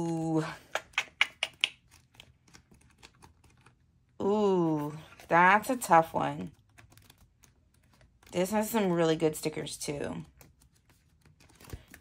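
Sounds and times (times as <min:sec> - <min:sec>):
sticker book pages flipping: 0:01.3 - 0:09.4, 0:10.2 - 0:12.0.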